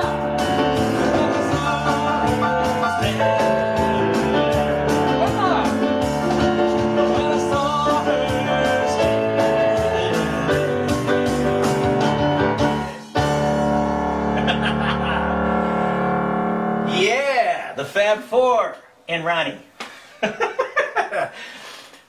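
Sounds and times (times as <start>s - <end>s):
piano with bass and drums: 0.0s - 17.8s
man laughing: 14.4s - 15.5s, 20.1s - 21.5s.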